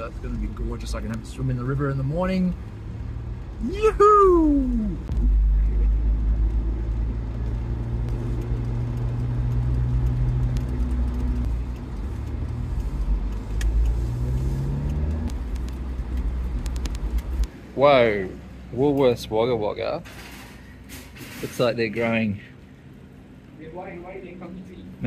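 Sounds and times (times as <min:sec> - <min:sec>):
car engine and road noise: 0:00.0 - 0:25.0.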